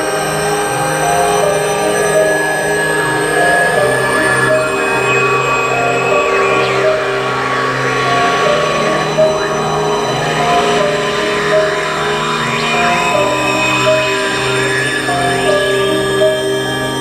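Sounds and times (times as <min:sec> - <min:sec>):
rising and falling glides: 0:00.0 - 0:17.0
sustained electronic drone: 0:00.0 - 0:17.0.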